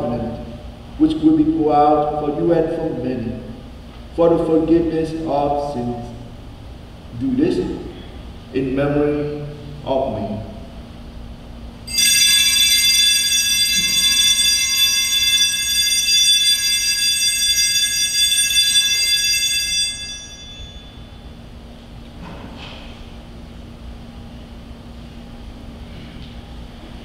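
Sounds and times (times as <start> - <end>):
altar bell ringing: 11.9 - 21.5.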